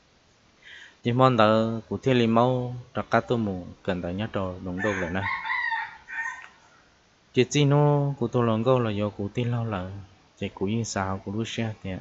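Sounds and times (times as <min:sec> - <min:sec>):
man speaking: 0:01.1 - 0:05.4, 0:07.4 - 0:12.0.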